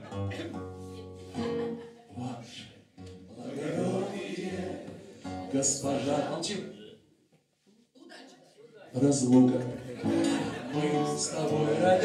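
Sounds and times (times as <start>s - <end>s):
acoustic guitar chords: 0.0s - 2.4s, 3.0s - 6.3s, 10.0s - 12.0s
person singing: 10.5s - 12.0s.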